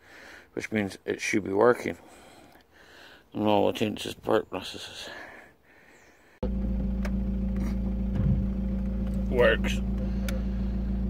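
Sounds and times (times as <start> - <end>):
diesel engine idling: 6.4 - 11.0.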